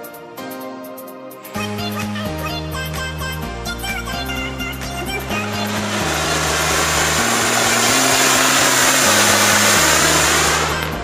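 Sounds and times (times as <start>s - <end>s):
background music with bass: 0.0s - 11.0s
firework spraying sparks hissing: 4.4s - 11.0s.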